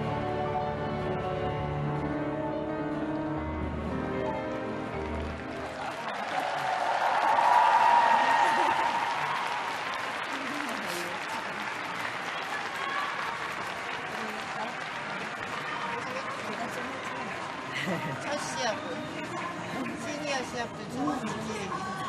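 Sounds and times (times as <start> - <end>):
music: 0.0 - 7.2
audience applauding: 4.4 - 20.5.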